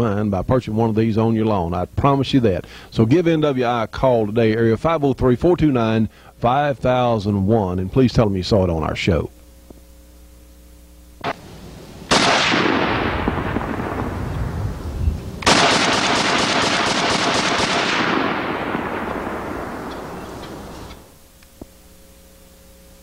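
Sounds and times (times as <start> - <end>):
machine gun shots echoing: 12.1 - 14.8, 15.4 - 21.2.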